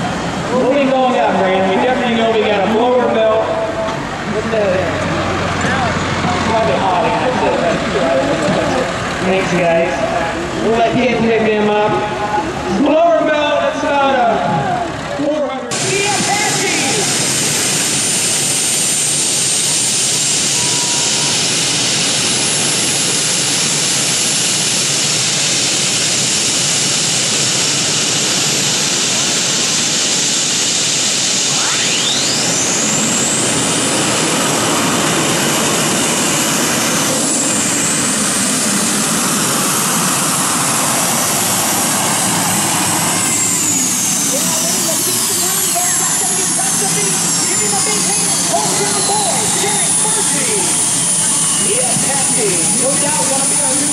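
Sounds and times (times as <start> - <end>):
high turbine whine: 0.0 - 53.9
turbine engines running: 0.0 - 53.9.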